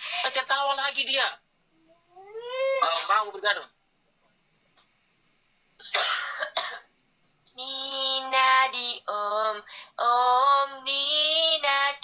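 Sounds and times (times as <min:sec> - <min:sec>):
cough-like burst: 0:05.8 - 0:06.9.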